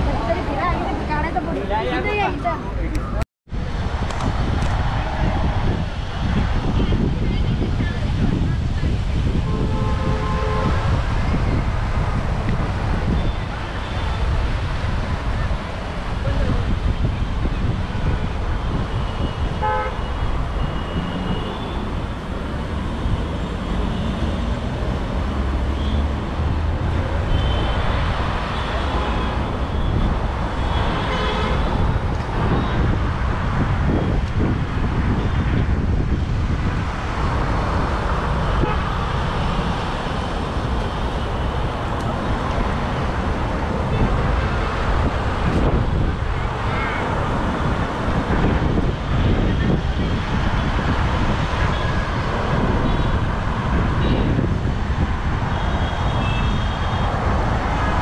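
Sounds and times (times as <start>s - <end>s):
road traffic noise: 0.0s - 58.0s
car horn toots: 19.6s - 20.0s.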